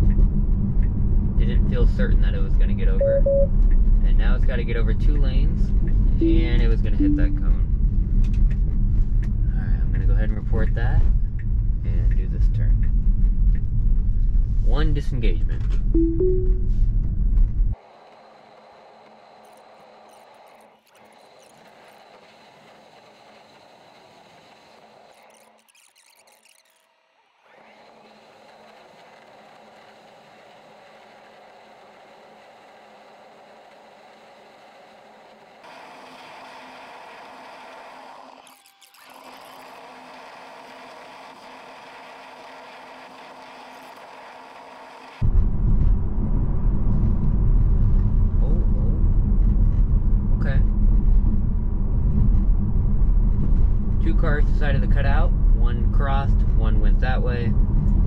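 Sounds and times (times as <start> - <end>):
road and tyre rumble in car: 0.0 - 7.0, 7.6 - 15.9, 16.8 - 25.4, 27.2 - 38.2, 39.6 - 58.0
faint steady hum: 0.8 - 8.6.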